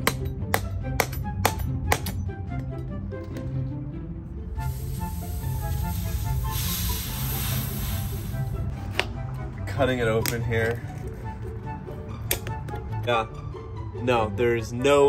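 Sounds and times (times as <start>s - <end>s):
gas hissing from aerosol can: 4.6s - 8.7s.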